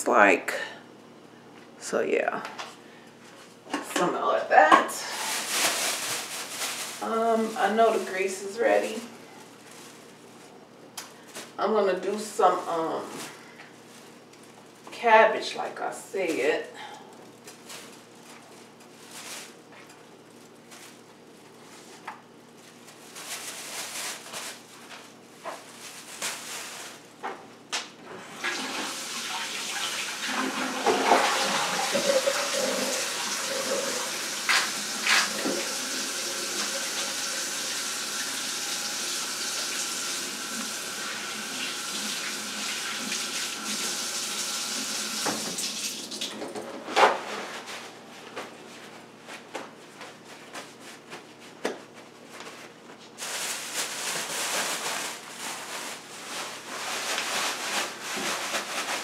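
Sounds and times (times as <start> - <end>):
plastic bag rustling: 5.0 - 10.6, 11.2 - 14.9, 16.2 - 27.2, 47.0 - 59.0
kitchen tap running into sink: 28.3 - 46.4.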